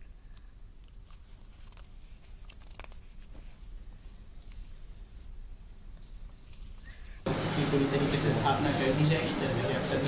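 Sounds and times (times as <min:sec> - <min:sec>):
faint clicks and rustles: 0:00.0 - 0:07.3
steady low hum: 0:00.0 - 0:10.0.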